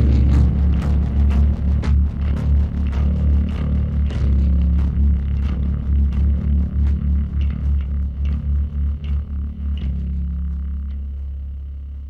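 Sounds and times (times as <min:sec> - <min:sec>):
electric bass playing low notes: 0:00.0 - 0:12.0.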